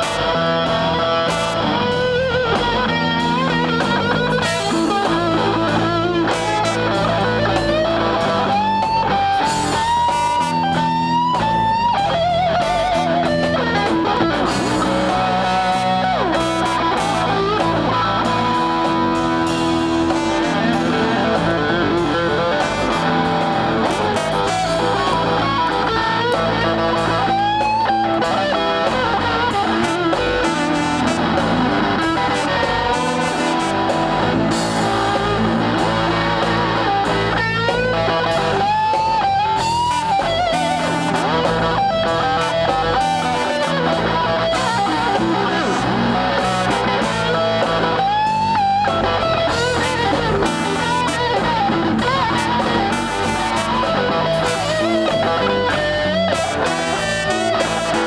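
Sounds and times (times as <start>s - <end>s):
bass guitar line: 0.0s - 58.0s
electric guitar solo: 0.0s - 58.0s.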